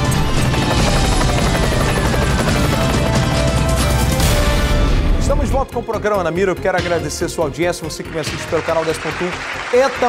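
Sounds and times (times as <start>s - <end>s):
helicopter rotor: 0.0s - 4.4s
dramatic intro music: 0.0s - 9.8s.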